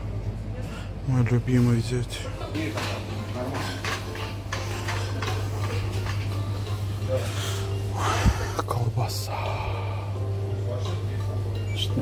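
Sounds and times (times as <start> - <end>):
refrigerator low hum: 0.0 - 12.0
faint voices: 0.1 - 12.0
background music: 2.6 - 12.0.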